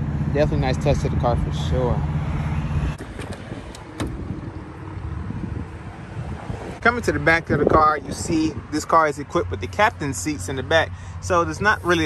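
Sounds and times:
vehicle engine idling: 0:00.0 - 0:12.0
wind on microphone: 0:02.3 - 0:08.8.

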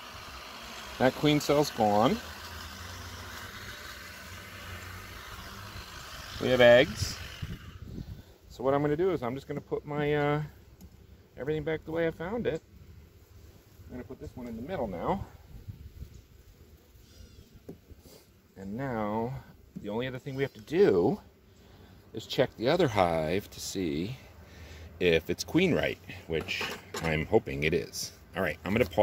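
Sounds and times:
honey bees buzzing: 0:00.0 - 0:29.0.

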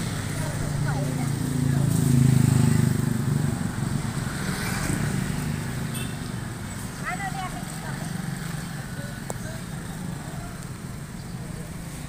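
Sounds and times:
motorcycle engine passing: 0:00.0 - 0:06.1
street traffic rumble: 0:00.0 - 0:12.0.

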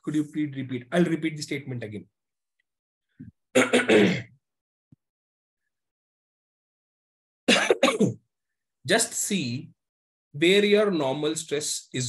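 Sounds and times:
man clearing his throat: 0:03.6 - 0:04.4, 0:07.5 - 0:08.2.

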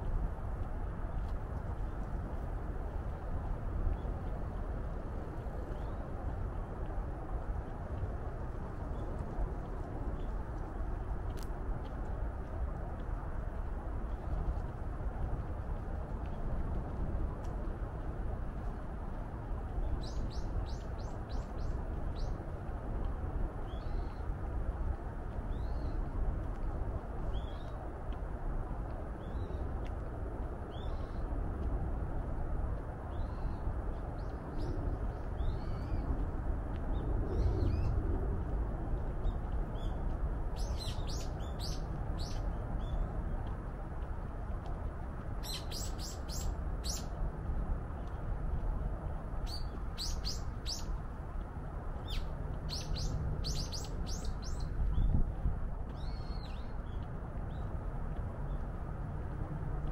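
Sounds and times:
small birds chirping: 0:40.6 - 0:43.1, 0:45.4 - 0:47.2, 0:49.4 - 0:51.0, 0:52.0 - 0:55.2.

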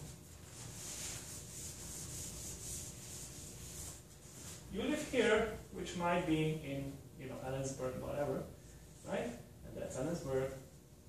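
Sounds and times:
eraser rubbing on whiteboard: 0:00.0 - 0:04.6.

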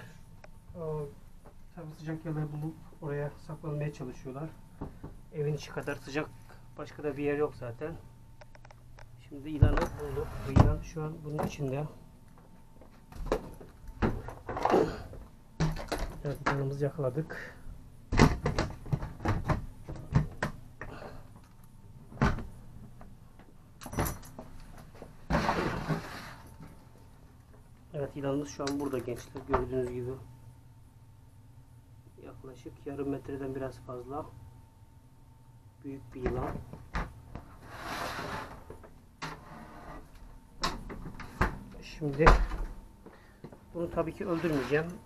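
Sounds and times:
scraping rustle: 0:25.3 - 0:26.7, 0:37.5 - 0:40.2, 0:44.1 - 0:45.0.

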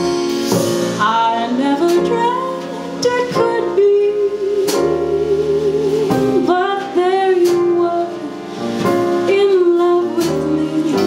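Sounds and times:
plucked upright bass: 0:00.0 - 0:11.0.

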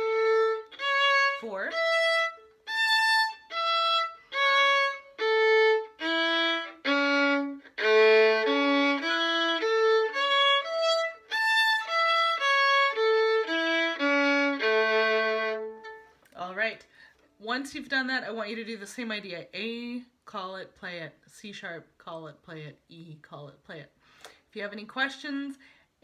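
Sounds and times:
violin playing arpeggio: 0:00.0 - 0:16.2.

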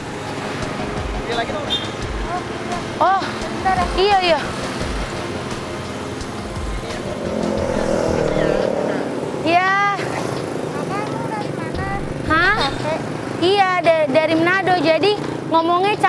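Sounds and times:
motorcycle passing by: 0:00.0 - 0:16.0.

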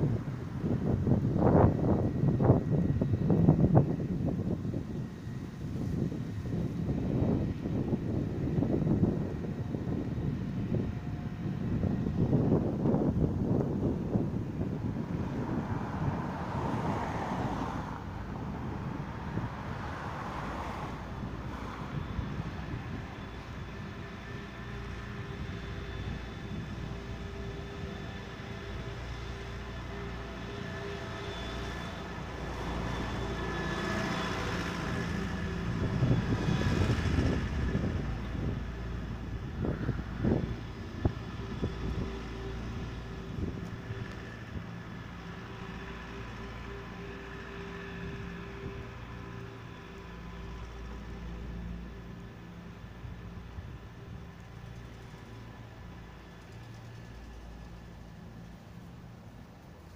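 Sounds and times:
vehicle passing: 0:00.0 - 0:59.6
traffic rumble: 0:00.0 - 0:59.9.

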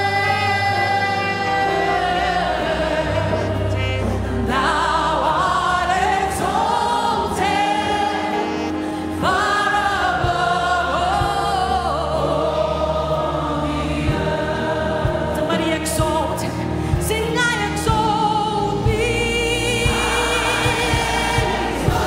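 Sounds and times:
choir singing gospel: 0:00.0 - 0:22.0
instrumental backing: 0:00.0 - 0:22.0.

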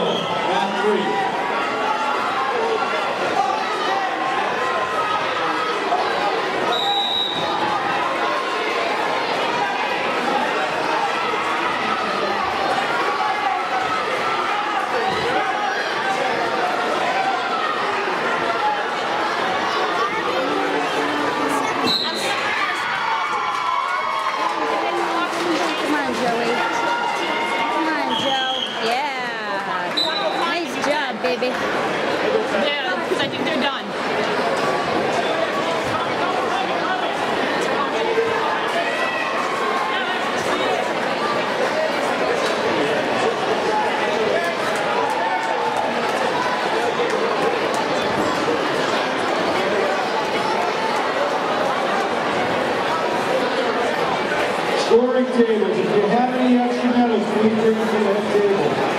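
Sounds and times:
spectators talking and shouting: 0:00.0 - 0:58.9.

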